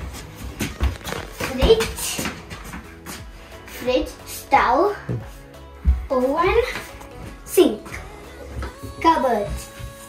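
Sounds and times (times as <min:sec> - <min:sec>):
footsteps on tiled floor: 0:00.0 - 0:04.1, 0:04.9 - 0:10.0
background music: 0:00.0 - 0:10.0
child's voice: 0:01.4 - 0:02.3, 0:03.7 - 0:05.2, 0:05.9 - 0:06.9, 0:07.5 - 0:08.1, 0:09.0 - 0:09.8.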